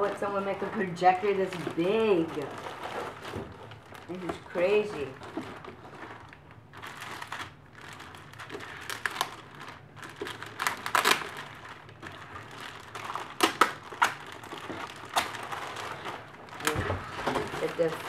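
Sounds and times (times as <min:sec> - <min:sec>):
plastic wrapping crinkling: 0:00.0 - 0:18.0.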